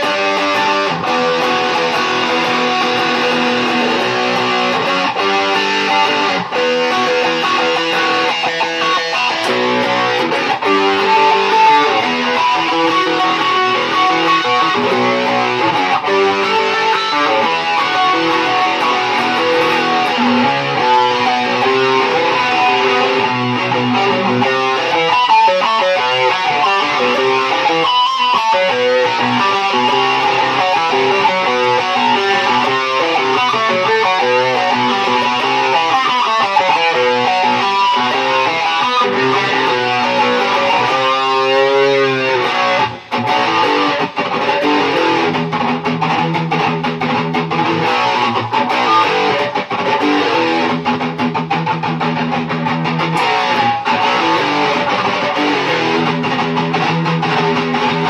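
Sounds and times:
electric guitar picked notes: 0.0 - 58.0.

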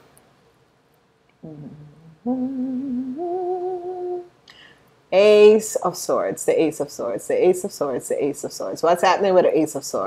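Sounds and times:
woman humming: 1.4 - 4.3.

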